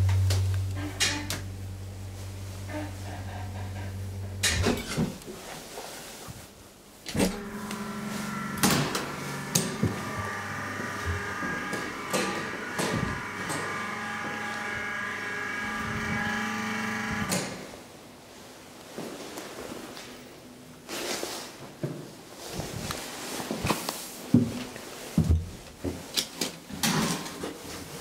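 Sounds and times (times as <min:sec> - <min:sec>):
elevator humming: 0:00.0 - 0:05.6, 0:07.0 - 0:17.9
multi-tone hum: 0:00.0 - 0:18.2.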